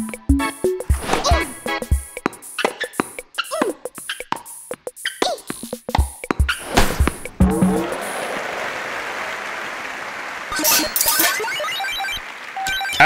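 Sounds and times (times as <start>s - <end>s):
background music: 0.0s - 8.6s
cartoon racket hitting ball: 5.1s - 8.0s.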